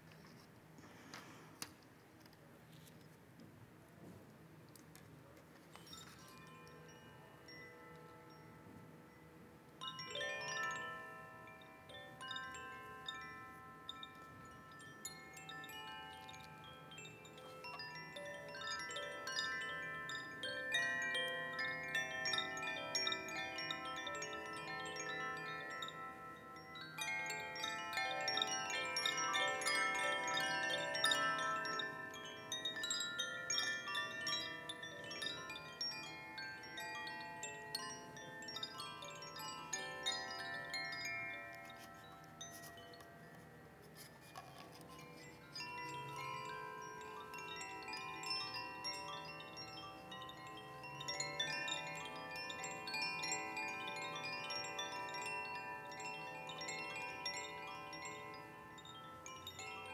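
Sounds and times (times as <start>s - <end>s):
tube chimes ringing: 9.8s - 59.9s.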